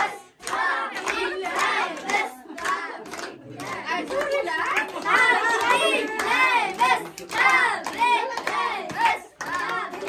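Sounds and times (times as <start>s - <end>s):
people clapping: 0.0s - 10.0s
voices singing together: 0.0s - 10.0s.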